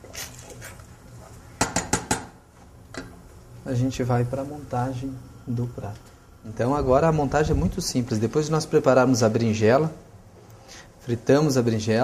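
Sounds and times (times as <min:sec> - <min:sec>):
wooden spoon knocking on saucepan: 0:01.6 - 0:02.4.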